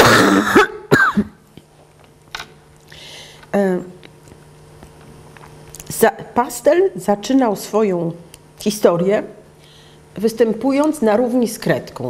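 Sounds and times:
woman coughing: 0.0s - 1.4s.

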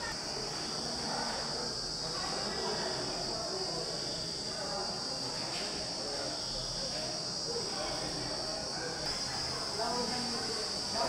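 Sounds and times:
faint voices: 0.0s - 11.0s
insect chorus: 0.0s - 11.0s.

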